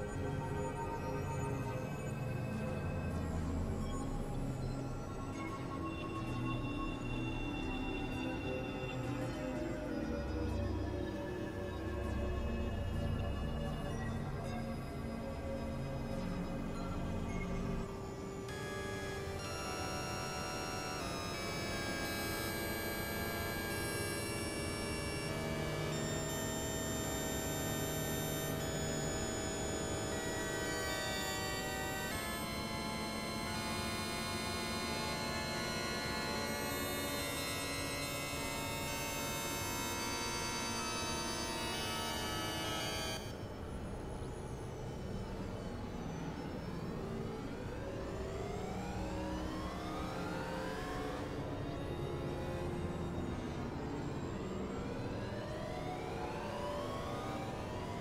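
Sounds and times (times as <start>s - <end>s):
synthesizer drone music: 18.5s - 22.4s.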